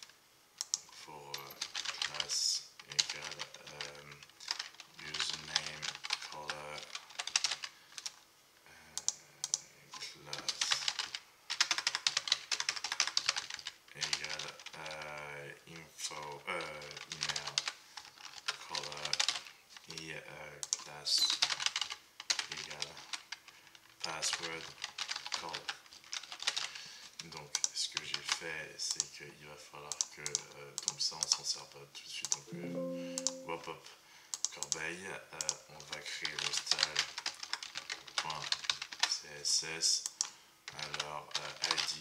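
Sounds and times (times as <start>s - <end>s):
computer keyboard typing: 0.6s - 8.2s, 9.0s - 9.6s, 10.3s - 15.0s, 16.6s - 19.5s, 20.6s - 23.4s, 24.0s - 28.3s, 29.9s - 31.4s, 32.3s - 33.6s, 34.3s - 39.2s, 40.0s - 42.0s.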